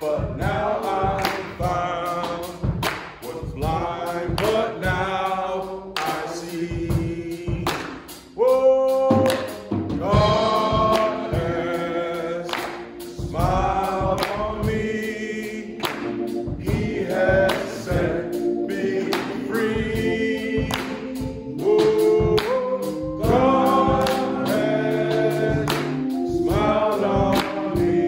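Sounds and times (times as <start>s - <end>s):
man singing into a microphone: 0.0s - 7.7s, 8.4s - 15.8s, 16.6s - 28.0s
voices singing along: 0.0s - 28.0s
hands clapping in time: 1.2s - 1.7s, 2.8s - 3.3s, 4.4s - 4.6s, 6.0s - 6.2s, 7.7s - 8.2s, 9.2s - 9.8s, 10.9s - 11.3s, 12.4s - 13.1s, 14.2s - 14.5s, 15.8s - 16.4s, 17.5s - 18.0s, 19.0s - 19.5s, 20.6s - 21.3s, 22.4s - 23.0s, 24.0s - 24.5s, 25.6s - 26.2s, 27.3s - 27.8s.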